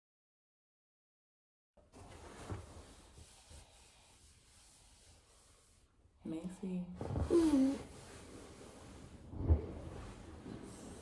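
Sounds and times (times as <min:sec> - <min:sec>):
bedclothes rustling: 0:01.9 - 0:03.6, 0:07.0 - 0:11.0.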